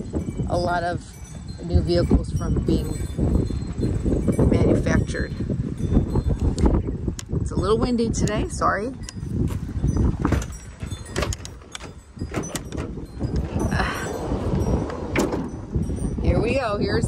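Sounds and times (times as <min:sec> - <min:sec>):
wind buffeting microphone: 0:00.0 - 0:17.0
van sliding door rolling open: 0:10.2 - 0:16.2.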